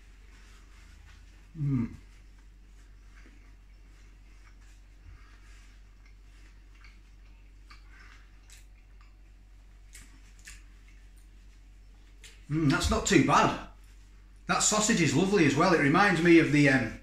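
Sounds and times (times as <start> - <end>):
wet chewing: 2.2 - 12.8.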